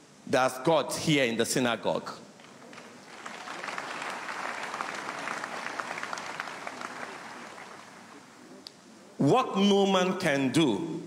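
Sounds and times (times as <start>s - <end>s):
congregation applauding: 2.4s - 8.4s.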